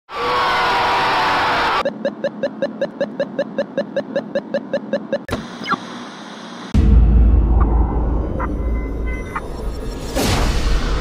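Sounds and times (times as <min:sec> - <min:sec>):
harsh scream: 0:00.1 - 0:01.8
rapid electronic beeping: 0:01.8 - 0:05.8.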